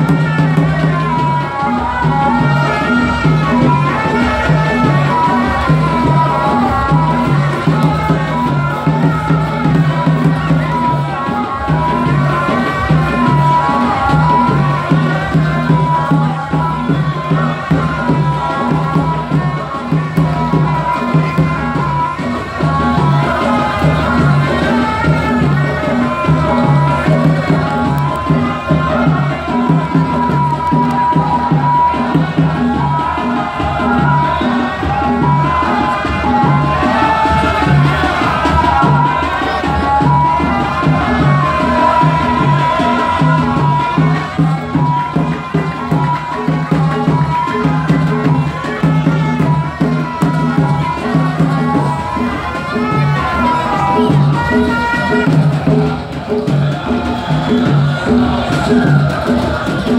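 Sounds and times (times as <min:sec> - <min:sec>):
drums beating steady rhythm: 0:00.0 - 0:59.9
men's group chanting: 0:00.0 - 0:59.9.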